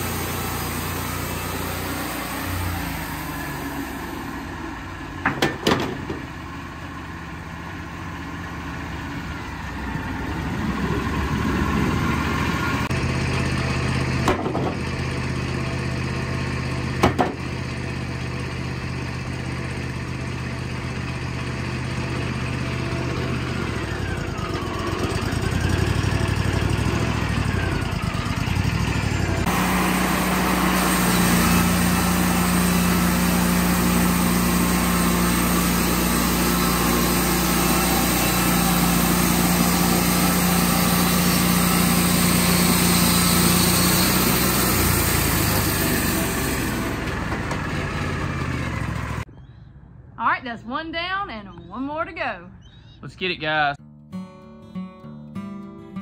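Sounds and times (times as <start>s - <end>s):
sawmill engine humming: 0.0s - 49.3s
band blade cutting wood hiss: 29.5s - 46.8s.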